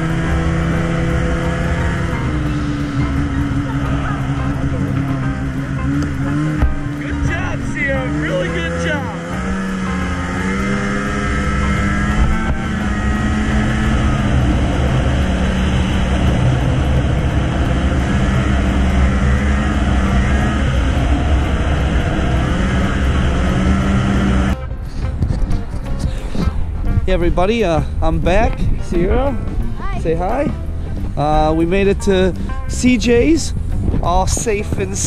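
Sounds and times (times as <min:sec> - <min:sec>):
snowmobile engine running hard: 0:00.0 - 0:35.0
track and wind noise: 0:00.0 - 0:35.0.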